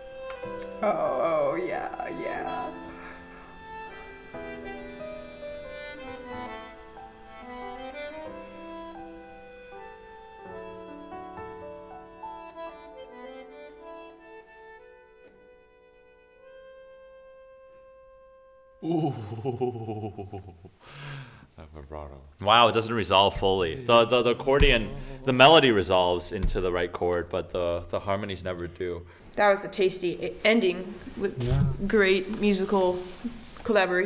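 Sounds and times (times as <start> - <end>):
accordion chords: 0.0 - 21.2.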